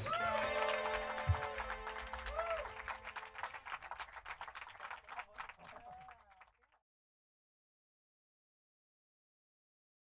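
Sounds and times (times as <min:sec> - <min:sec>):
small audience applauding: 0:00.0 - 0:06.8.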